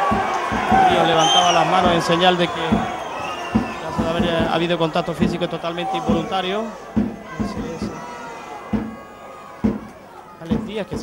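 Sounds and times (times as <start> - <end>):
football match ambience: 0.0 - 11.0
short knocks: 7.0 - 8.0, 8.7 - 11.0.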